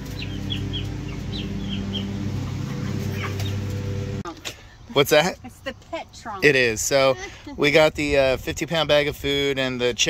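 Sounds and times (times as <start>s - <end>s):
chicks peeping: 0.0s - 4.0s.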